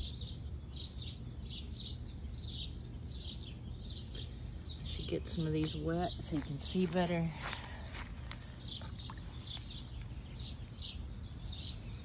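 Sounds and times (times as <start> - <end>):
birds chirping: 0.0 - 12.0
low steady rumble: 0.0 - 12.0.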